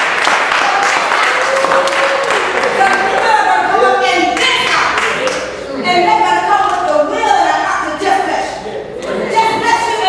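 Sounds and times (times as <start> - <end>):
hand claps: 0.0 - 3.3, 4.4 - 5.5.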